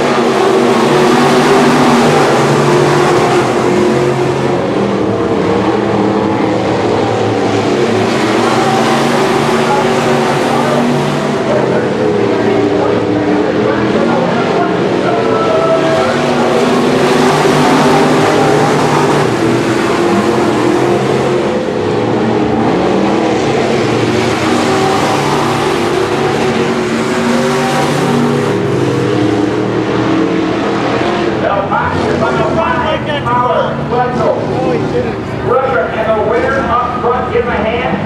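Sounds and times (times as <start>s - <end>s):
race car engines passing: 0.0s - 38.0s
person speaking: 31.6s - 38.0s.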